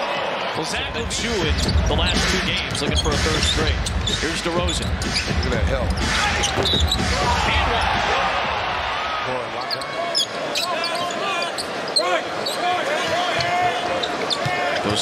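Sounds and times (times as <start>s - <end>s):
crowd cheering: 0.0s - 2.6s, 4.4s - 15.0s
sneaker squeaks: 1.6s - 7.3s, 9.6s - 15.0s
basketball bouncing on hardwood: 6.4s - 7.3s.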